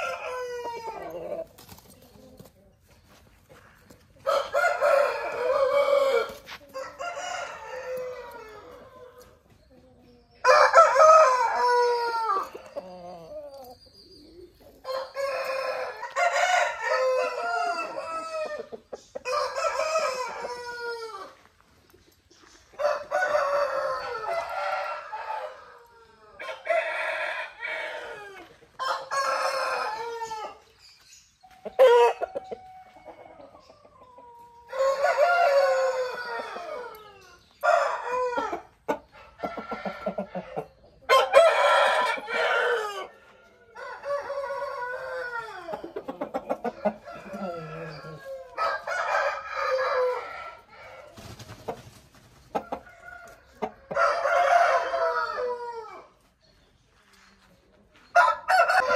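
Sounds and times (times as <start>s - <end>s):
roosters crowing: 0.0s - 1.6s, 4.2s - 9.4s, 10.4s - 13.6s, 14.7s - 21.6s, 22.7s - 30.7s, 31.7s - 51.6s, 52.5s - 56.2s, 58.1s - 58.9s.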